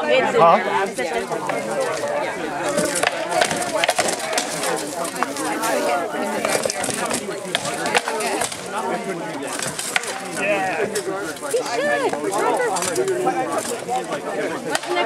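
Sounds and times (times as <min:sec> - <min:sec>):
background voices: 0:00.0 - 0:15.0
wooden swords striking shields: 0:01.4 - 0:13.9, 0:14.6 - 0:15.0.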